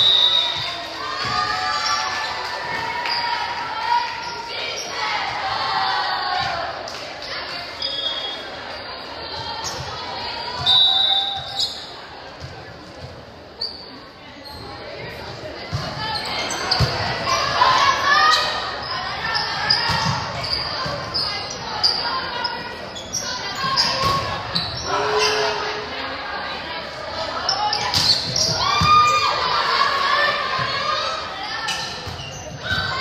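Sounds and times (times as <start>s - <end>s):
spectators talking: 0.0s - 33.0s
sneakers squeaking on court: 11.2s - 15.1s, 15.7s - 17.2s, 18.3s - 25.5s, 27.5s - 29.2s, 31.7s - 33.0s.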